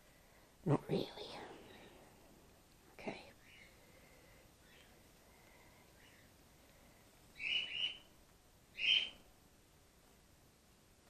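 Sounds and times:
flying fox high calls: 7.4 - 8.1, 8.8 - 9.2.

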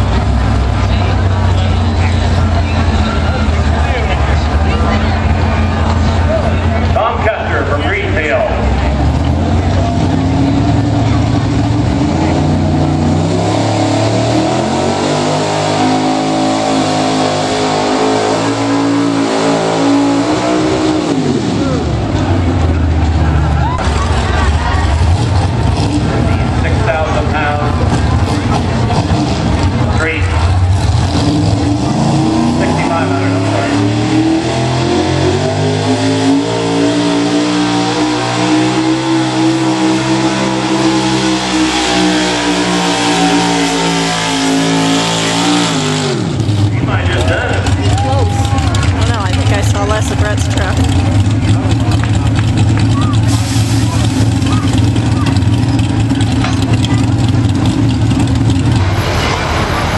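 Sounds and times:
pickup truck engine running loud: 0.0 - 59.9.

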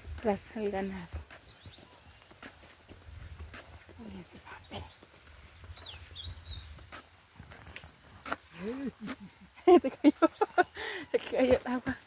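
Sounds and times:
wind rumbling on microphone: 0.0 - 8.3
footsteps on concrete: 0.0 - 12.0
bird chirping: 0.6 - 2.8, 4.0 - 7.2.

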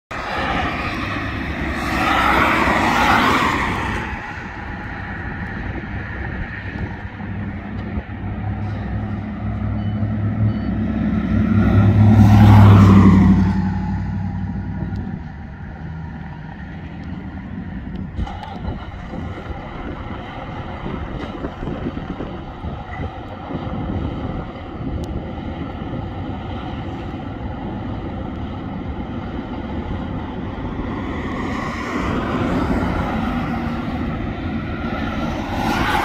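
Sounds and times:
low engine hum: 0.1 - 36.0.

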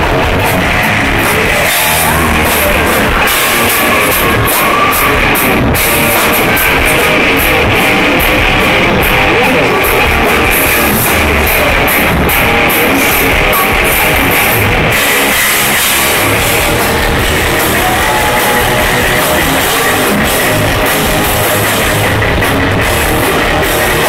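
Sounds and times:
bass guitar: 0.0 - 24.0
distorted electric guitar: 0.0 - 24.0.

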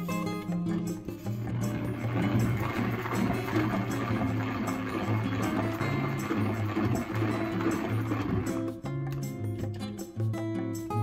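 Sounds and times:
background music: 0.0 - 11.0
salad spinner whirring: 1.3 - 8.7.

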